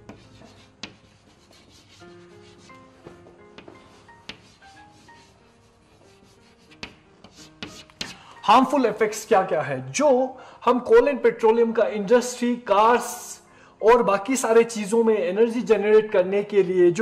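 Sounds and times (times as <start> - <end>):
chalk scratching on blackboard: 0.0 - 8.2
chalk tapping on blackboard: 0.0 - 8.2.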